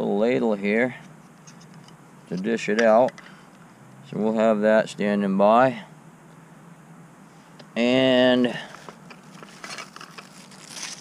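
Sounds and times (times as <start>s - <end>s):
plastic packet crinkling: 9.0s - 11.0s.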